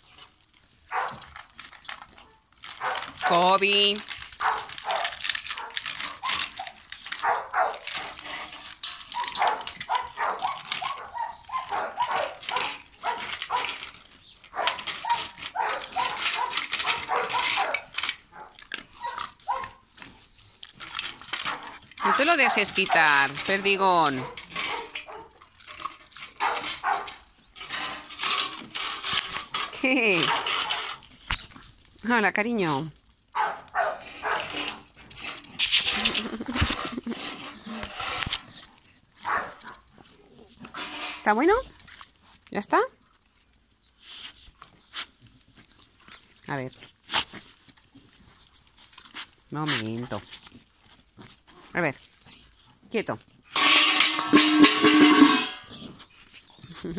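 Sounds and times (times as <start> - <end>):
dogs barking: 0.9 - 1.3, 2.3 - 3.4, 4.4 - 8.2, 9.1 - 13.8, 14.4 - 19.8, 24.2 - 25.4, 26.4 - 27.3, 33.3 - 34.8, 39.2 - 39.9.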